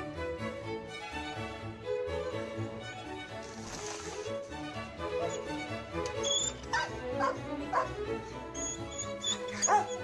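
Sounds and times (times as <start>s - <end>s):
background music: 0.0s - 10.0s
dog barking: 6.7s - 8.0s, 9.6s - 10.0s.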